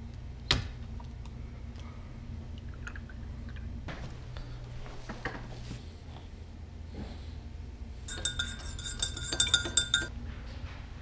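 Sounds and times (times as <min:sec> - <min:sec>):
spoon clinking against glass mug: 0:08.1 - 0:10.1.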